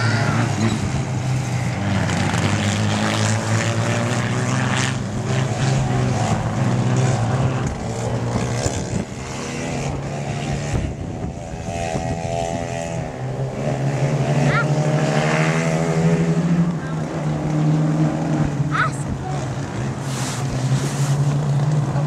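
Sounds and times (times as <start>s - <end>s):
stock car engines racing: 0.0s - 22.0s.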